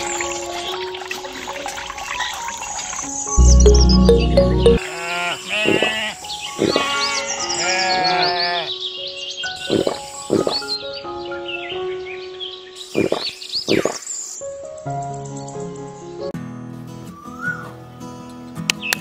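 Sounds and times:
background music: 0.0 - 5.1
sheep bleating: 4.8 - 8.8.

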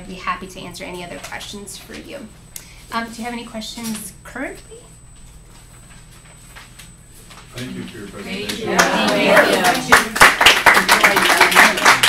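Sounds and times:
audience applauding: 8.5 - 12.0.

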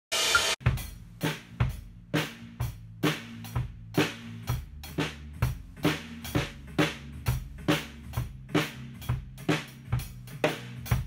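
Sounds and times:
cymbal wash: 0.1 - 0.6
drum kit steady beat: 0.1 - 11.0.

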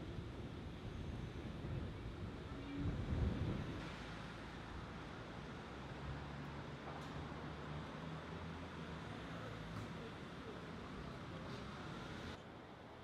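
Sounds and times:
wind on microphone: 1.1 - 3.8.

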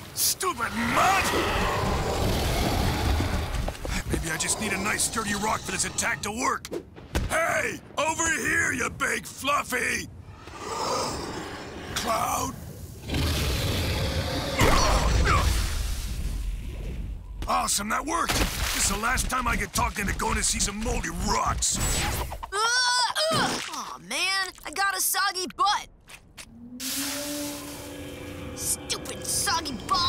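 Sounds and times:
deep rumbling rush: 0.6 - 6.0.

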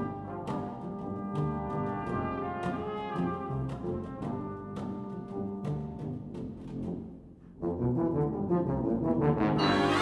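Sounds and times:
sustained brass chords: 8.8 - 10.0.

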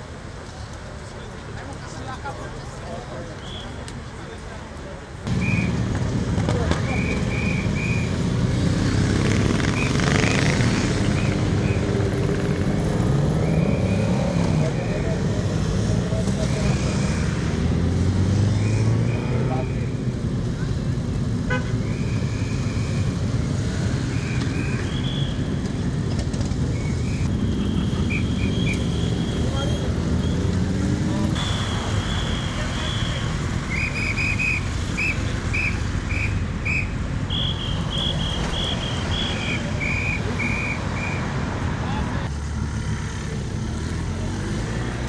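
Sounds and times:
motorcycle engines revving: 5.2 - 45.0.

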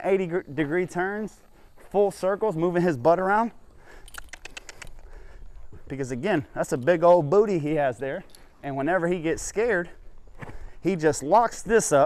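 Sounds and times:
horse tack clicking and rattling: 0.6 - 12.0.

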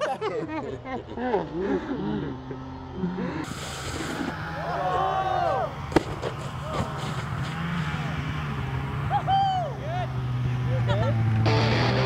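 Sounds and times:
low hum: 0.0 - 12.0
people calling out: 4.2 - 5.9, 6.5 - 11.9
rising and falling shout: 4.2 - 5.9, 9.0 - 12.0.

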